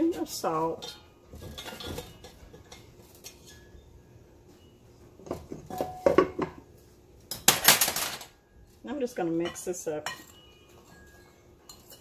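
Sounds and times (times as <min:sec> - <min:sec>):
spoon clinking against glass bowl: 0:09.4 - 0:12.0.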